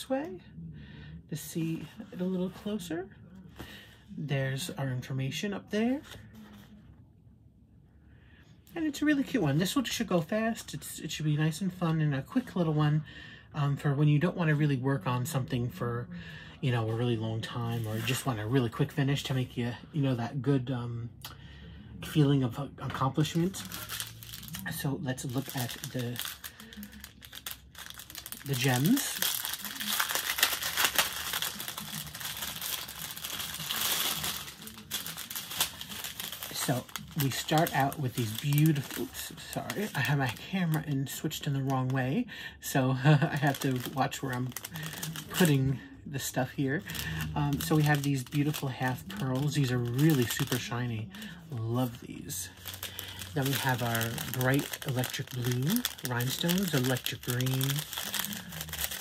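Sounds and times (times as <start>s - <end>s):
plastic sleeve rustling: 5.9s - 6.9s, 16.7s - 19.6s, 22.0s - 59.0s
plastic packaging crinkling: 16.8s - 19.4s, 22.0s - 59.0s.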